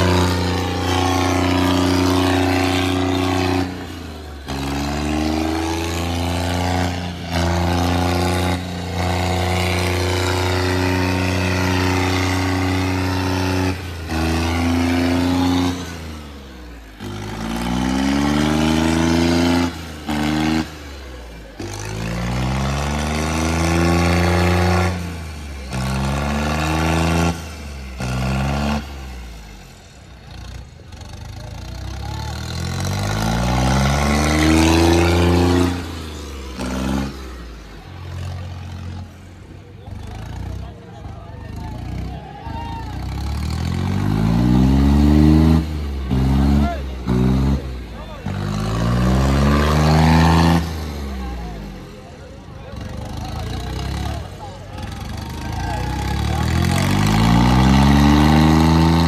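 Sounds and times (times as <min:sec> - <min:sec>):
tractor diesel engine revving: 0:00.0 - 0:59.0.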